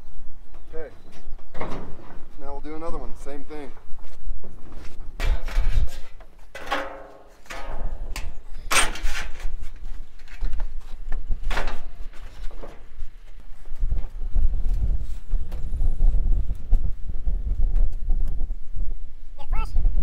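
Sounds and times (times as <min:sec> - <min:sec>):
steel roofing sheet rattling: 0:05.2 - 0:13.2.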